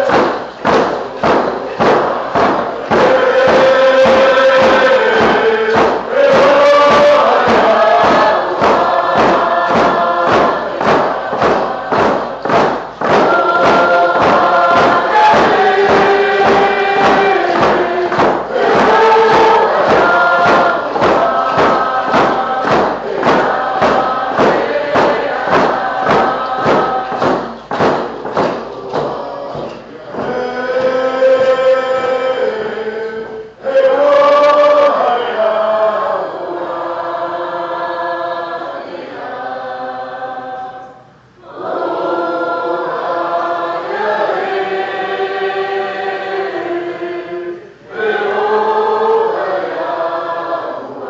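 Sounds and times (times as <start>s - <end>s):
steady drum beat: 0.0s - 32.1s
group singing in unison: 0.0s - 51.0s.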